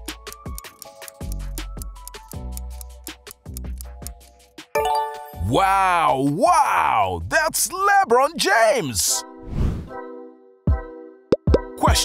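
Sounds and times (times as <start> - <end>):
background music: 0.0 - 12.0
held synth chord: 4.8 - 5.4
person speaking: 5.2 - 9.2.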